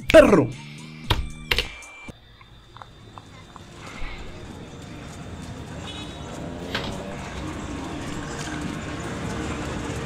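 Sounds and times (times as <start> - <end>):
distant voices: 2.2 - 10.0.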